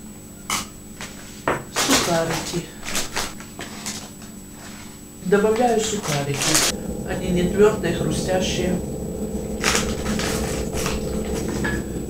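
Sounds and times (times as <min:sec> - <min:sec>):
plastic bag rustling: 0:01.1 - 0:06.7.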